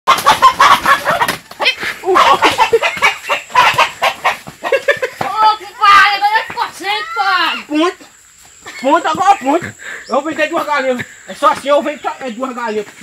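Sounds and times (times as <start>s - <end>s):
chickens clucking: 0.1s - 5.7s.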